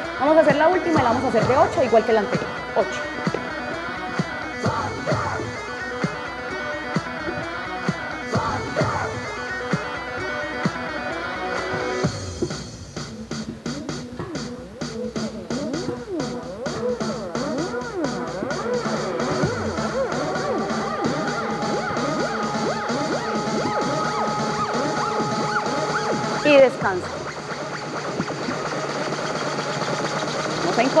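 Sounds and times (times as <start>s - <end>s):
electronic music with guitar tones: 0.0s - 31.0s.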